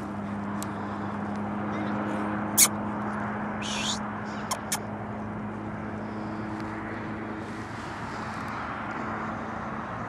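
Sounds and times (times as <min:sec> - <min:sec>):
distant engine hum: 0:00.0 - 0:10.0
outdoor background noise: 0:00.0 - 0:10.0.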